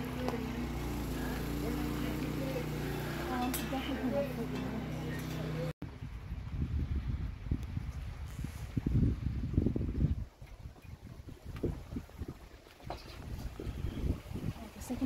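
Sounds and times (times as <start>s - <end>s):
wind buffeting microphone: 5.8s - 15.0s.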